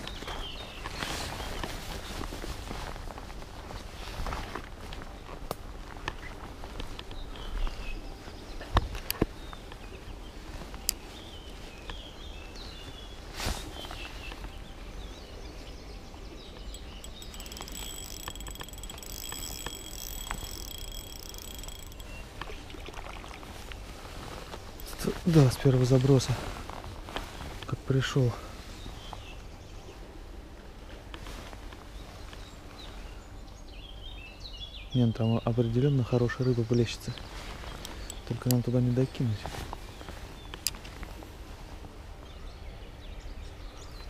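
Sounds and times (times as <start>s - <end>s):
birds calling: 7.0s - 23.9s, 31.9s - 41.3s
fishing reel clicks: 16.7s - 22.6s, 24.8s - 25.0s
footsteps through grass: 22.2s - 28.9s.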